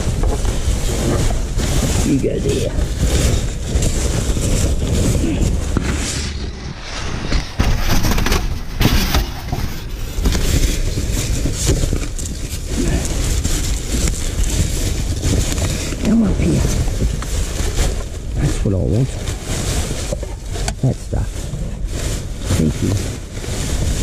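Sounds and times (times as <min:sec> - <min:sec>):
plastic and paper crinkling: 0:00.0 - 0:24.0
steady low rumble: 0:00.0 - 0:24.0.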